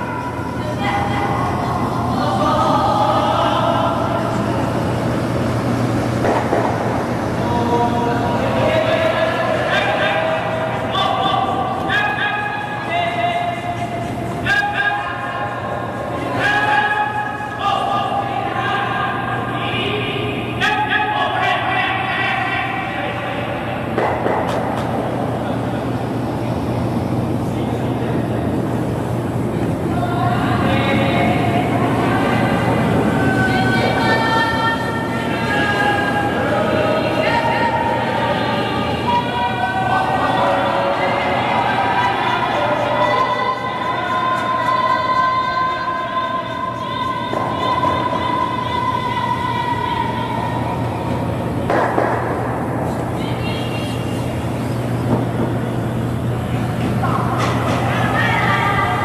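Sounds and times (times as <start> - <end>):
faint players calling: 7.2 - 51.8.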